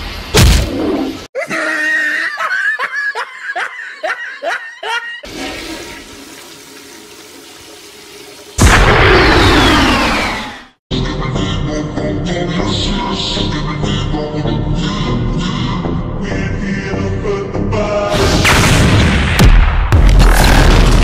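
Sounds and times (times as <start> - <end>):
cartoon laugh-like voice: 1.4 - 5.3
toilet flush rushing: 5.2 - 8.6
rushing burst with falling whistle: 8.7 - 10.7.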